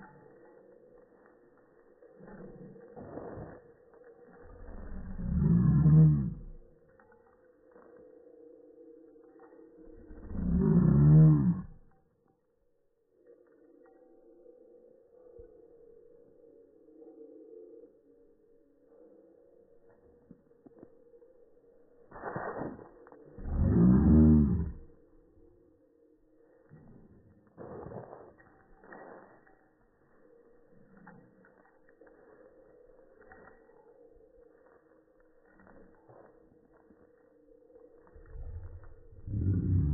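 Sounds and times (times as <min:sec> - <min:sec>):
deep slowed-down voice: 0:02.1 - 0:07.1, 0:09.8 - 0:12.1, 0:22.7 - 0:25.6, 0:38.0 - 0:39.9
low steady hum: 0:28.3 - 0:39.9.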